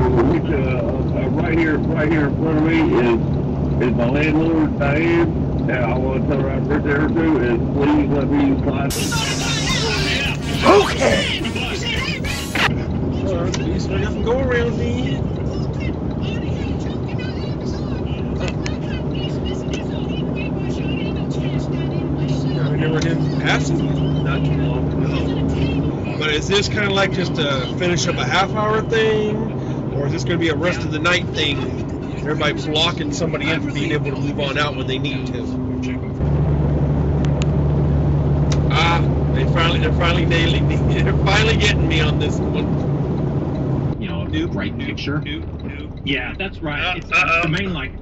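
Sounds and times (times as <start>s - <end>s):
faint talk: 8.9s - 13.5s
truck engine and road drone: 13.9s - 48.0s.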